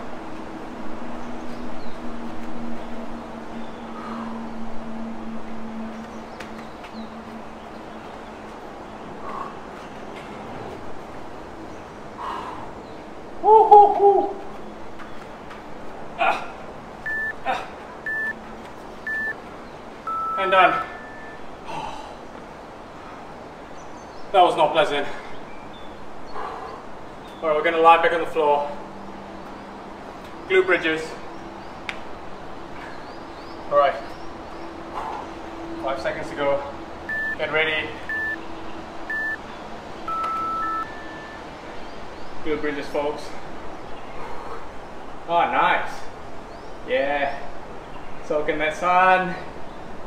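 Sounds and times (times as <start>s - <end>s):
longer timer beep: 17.0s - 17.4s, 18.0s - 18.4s, 19.1s - 19.4s, 20.1s - 21.4s, 37.1s - 38.4s, 39.1s - 39.4s, 40.1s - 41.4s
short high timer beeps: 17.1s - 17.4s, 18.1s - 18.4s, 19.1s - 19.3s, 20.1s - 21.4s, 37.1s - 37.4s, 38.1s - 38.4s, 39.1s - 39.4s, 40.1s - 41.4s
man grunting and breathing: 21.7s - 22.2s.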